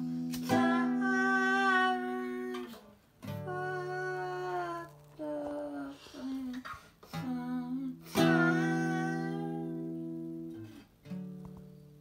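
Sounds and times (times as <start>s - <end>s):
person humming: 0.0s - 9.9s.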